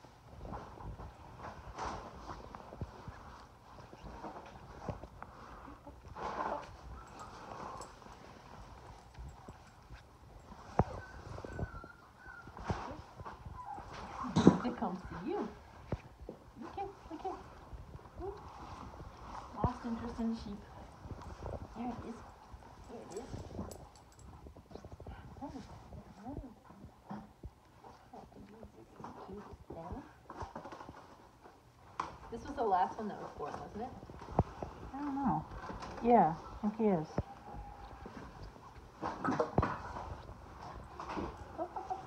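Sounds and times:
puppy moving on blanket: 0.1s - 27.0s
puppy whimpering: 10.5s - 15.6s.

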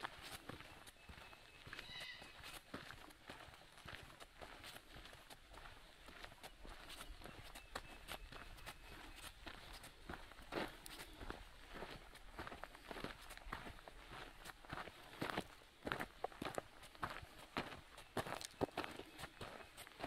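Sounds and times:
footsteps on gravel: 0.0s - 20.0s.

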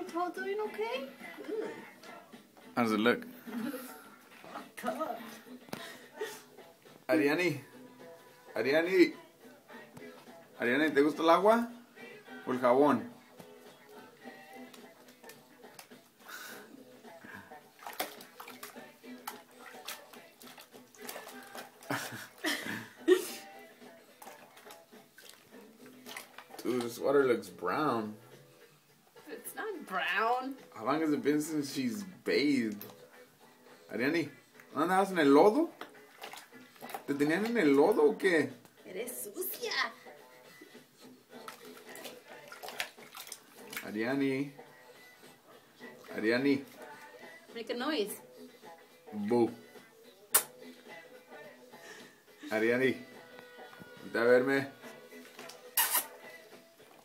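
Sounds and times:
faint background music: 0.0s - 57.0s
water splashing in baby bath: 17.5s - 22.4s, 24.1s - 27.0s, 34.6s - 38.1s, 41.4s - 44.6s.

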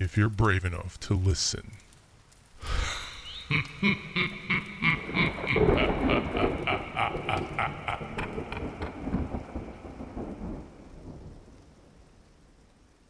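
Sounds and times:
rain: 0.0s - 13.0s
rumbling thunder: 4.2s - 12.7s.

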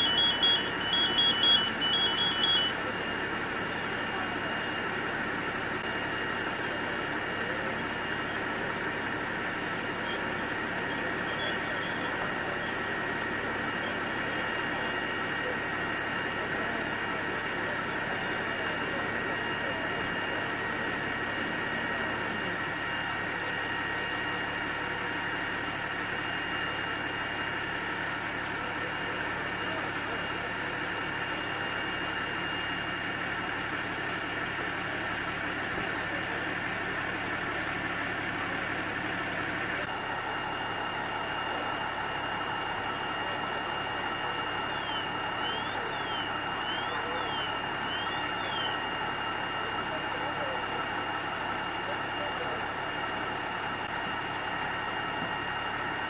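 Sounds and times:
engine droning: 0.0s - 56.0s.

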